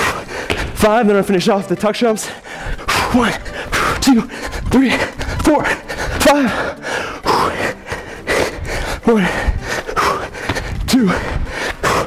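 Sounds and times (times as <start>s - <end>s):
man breathing hard: 0.0s - 0.8s, 2.2s - 12.0s.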